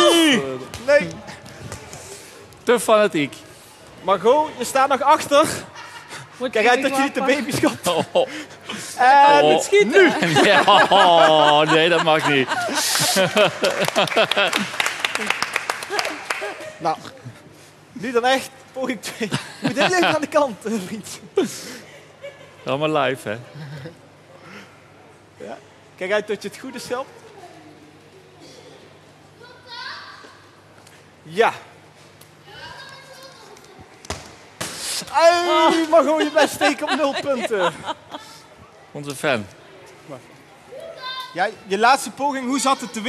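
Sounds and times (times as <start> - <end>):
people laughing: 5.5 - 17.4, 19.0 - 24.1, 35.2 - 38.5
audience clapping: 12.7 - 16.8.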